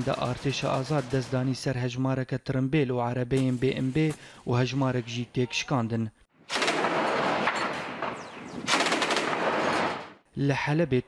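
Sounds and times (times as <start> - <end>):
heavy gunfire: 6.5 - 10.2.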